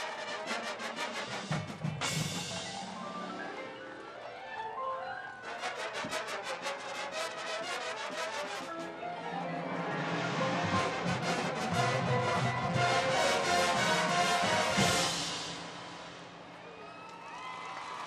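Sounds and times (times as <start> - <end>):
marching band brass playing: 0.0 - 3.2, 5.4 - 9.0, 9.6 - 16.5.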